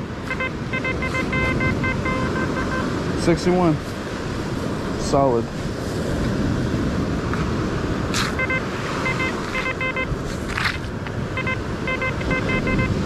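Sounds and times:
surf: 0:00.0 - 0:13.0
wind: 0:00.0 - 0:13.0
metal detector beeps: 0:00.2 - 0:02.9, 0:08.2 - 0:10.1, 0:11.4 - 0:13.0.

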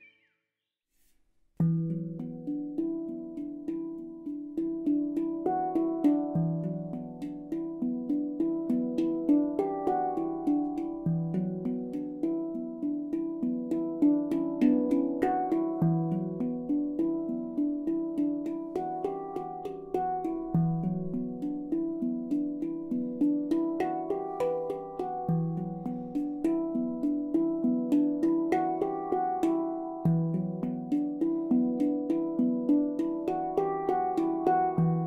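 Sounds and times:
handpan notes: 0:01.6 - 0:35.0.

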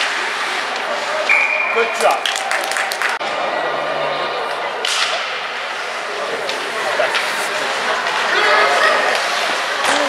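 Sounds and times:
skate scraping on ice: 0:05.8 - 0:09.7
rink noise hiss: 0:05.9 - 0:08.3.

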